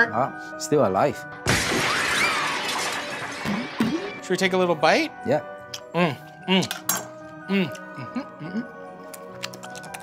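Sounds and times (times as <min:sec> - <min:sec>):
glass shattering: 0:01.4 - 0:04.3.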